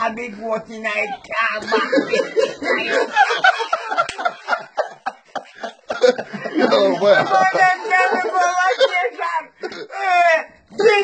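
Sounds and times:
man laughing: 0:01.5 - 0:09.2.

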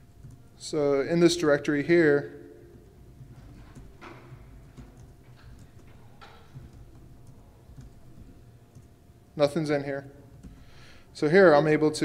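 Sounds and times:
laptop keys typing: 0:00.0 - 0:01.4, 0:02.7 - 0:11.0
low steady hum: 0:00.0 - 0:12.0.

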